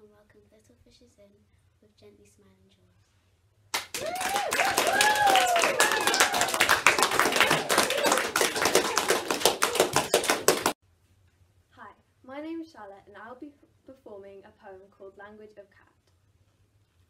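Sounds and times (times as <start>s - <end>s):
children clapping: 3.7s - 10.8s
voices calling out: 4.0s - 10.7s.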